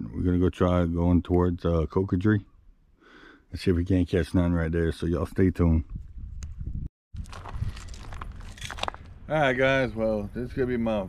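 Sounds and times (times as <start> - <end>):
footsteps crunching on gravel: 7.2 - 9.2.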